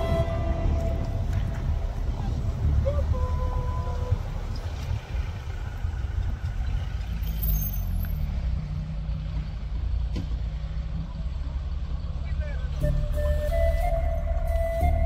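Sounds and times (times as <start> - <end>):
suv engines rumbling: 0.0 - 15.0.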